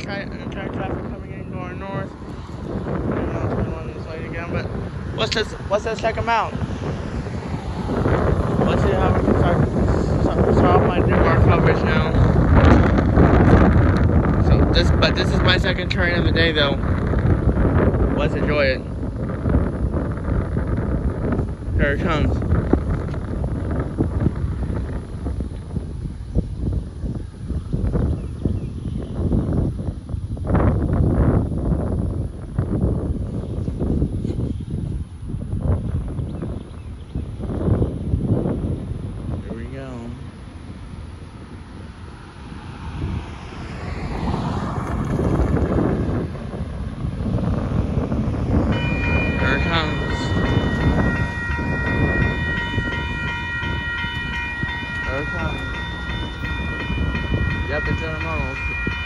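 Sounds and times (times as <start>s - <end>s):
wind on microphone: 0.0s - 59.0s
railroad crossing warning bell: 47.2s - 59.0s.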